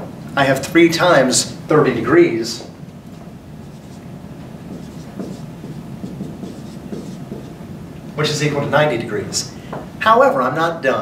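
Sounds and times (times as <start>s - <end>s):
marker scratching on whiteboard: 3.6s - 4.0s, 4.6s - 7.6s.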